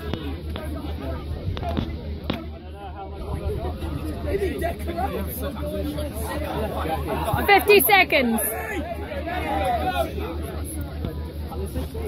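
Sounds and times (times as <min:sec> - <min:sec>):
voices chattering: 0:00.0 - 0:12.0
loud high shout: 0:08.2 - 0:10.2.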